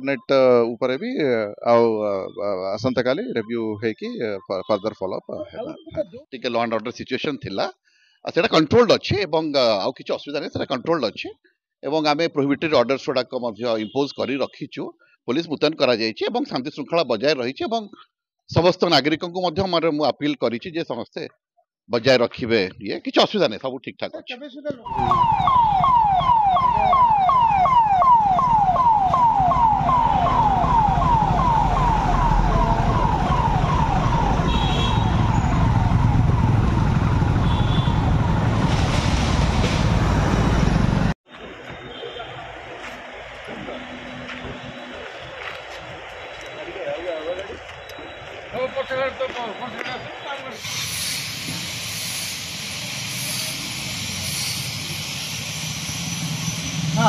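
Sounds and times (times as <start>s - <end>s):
police siren wailing: 24.9s - 39.0s, 40.1s - 50.6s
rumble of road traffic: 24.9s - 57.0s
steady street hiss: 38.7s - 57.0s.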